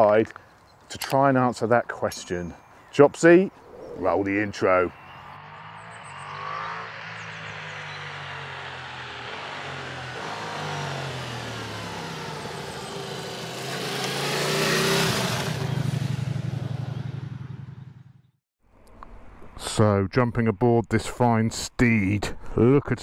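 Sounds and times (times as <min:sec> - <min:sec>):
motorcycle passing by: 0:03.7 - 0:18.4.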